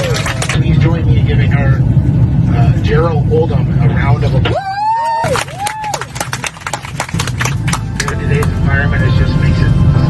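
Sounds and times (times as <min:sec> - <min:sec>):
passengers applauding: 0:00.0 - 0:00.7, 0:04.8 - 0:08.6
aircraft cabin drone: 0:00.0 - 0:10.0.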